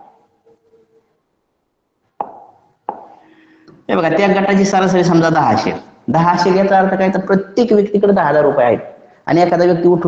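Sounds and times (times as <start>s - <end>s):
sharp taps on hard surface: 2.2s - 3.2s
man speaking: 3.8s - 10.0s.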